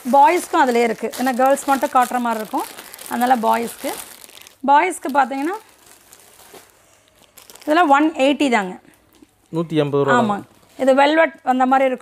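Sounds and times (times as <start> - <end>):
woman talking: 0.0 - 4.0, 4.6 - 5.6, 7.7 - 8.9, 10.1 - 12.0
plastic packaging crinkling: 0.0 - 9.6.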